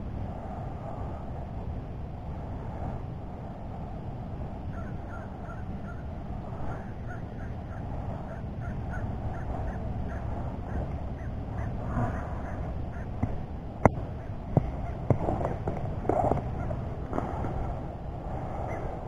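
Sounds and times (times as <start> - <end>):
steady low rumble: 0.0 - 19.0
birds calling: 4.6 - 17.5.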